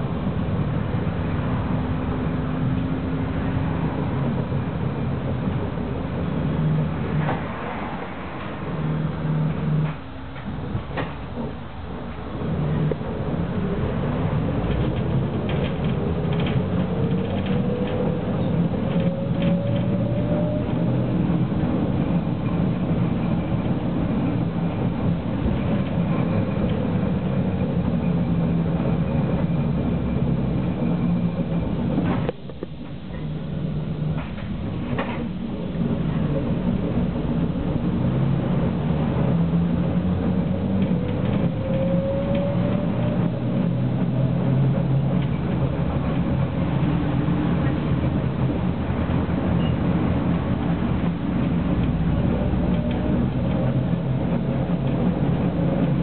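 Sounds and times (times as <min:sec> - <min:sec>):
tram rumbling on track: 0:00.0 - 0:56.0.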